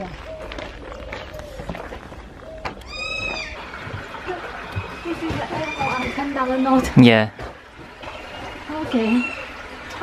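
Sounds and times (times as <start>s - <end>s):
parrot calling: 2.4s - 3.8s, 9.0s - 9.6s.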